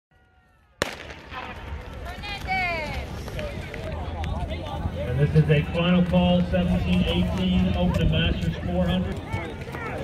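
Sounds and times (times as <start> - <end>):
background chatter: 1.2 - 10.0.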